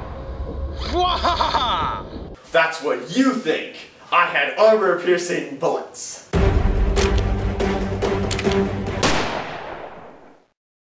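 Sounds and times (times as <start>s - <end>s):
background music: 6.3s - 9.9s
handgun gunshots: 8.3s - 10.2s.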